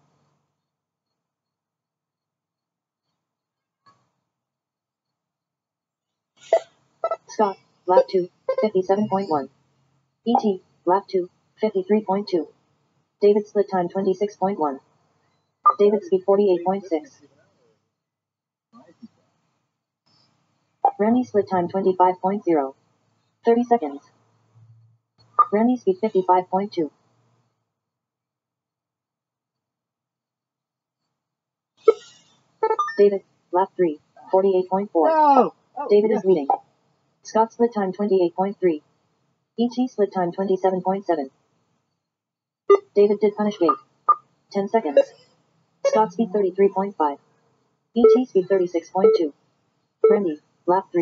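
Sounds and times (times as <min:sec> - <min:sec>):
synthesized voice announcing: 0:06.5 - 0:09.5, 0:10.3 - 0:12.4, 0:13.2 - 0:14.8, 0:15.7 - 0:17.1, 0:20.9 - 0:22.7, 0:23.5 - 0:24.0, 0:25.4 - 0:26.9, 0:32.8 - 0:36.6, 0:42.7 - 0:43.8, 0:44.6 - 0:45.2, 0:45.9 - 0:47.2, 0:48.0 - 0:49.3.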